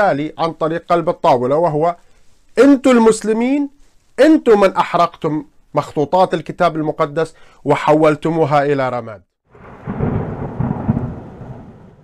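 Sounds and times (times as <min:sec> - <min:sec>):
thunder-like rumble: 0:09.5 - 0:12.0.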